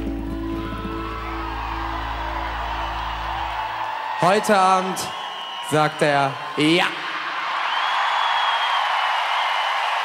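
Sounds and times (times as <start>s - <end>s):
concert crowd whooping: 0.0s - 10.0s.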